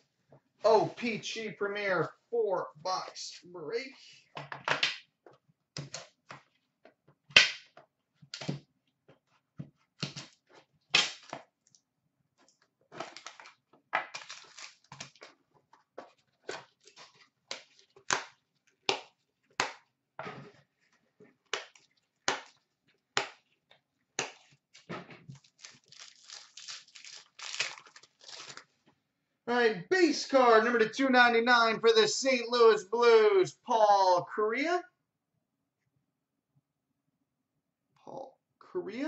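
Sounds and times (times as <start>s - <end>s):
foil wrapper tearing and crinkling: 13.1s - 15.4s, 24.8s - 28.8s.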